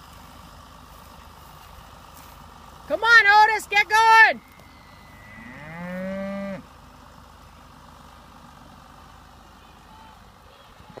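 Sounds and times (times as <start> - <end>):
bull mooing: 5.1 - 6.6.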